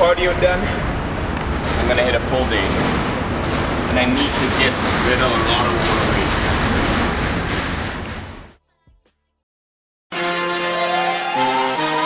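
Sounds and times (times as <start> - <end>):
loud steady rushing noise: 0.0 - 8.6.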